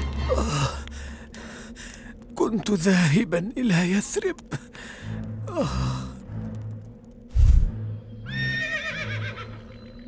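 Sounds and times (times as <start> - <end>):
horse whinnying: 8.3 - 9.6.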